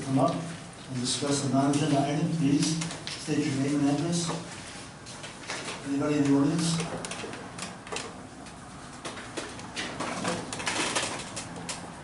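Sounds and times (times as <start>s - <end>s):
people rustling in seats: 0.1s - 11.9s.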